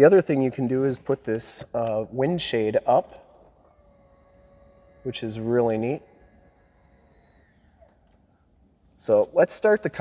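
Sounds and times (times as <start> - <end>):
electric motor whine: 2.0 - 9.3.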